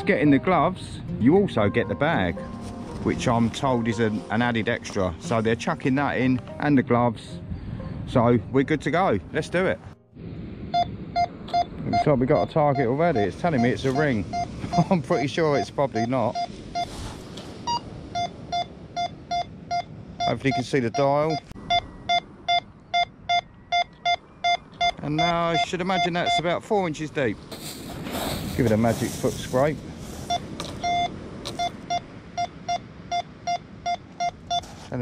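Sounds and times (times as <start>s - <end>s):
metal detector beeping: 10.7s - 17.0s, 17.6s - 26.5s, 30.2s - 34.9s.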